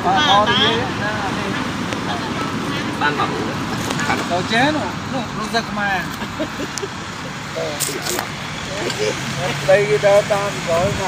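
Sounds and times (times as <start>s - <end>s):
outdoor background noise: 0.0s - 11.0s
people talking: 0.0s - 11.0s.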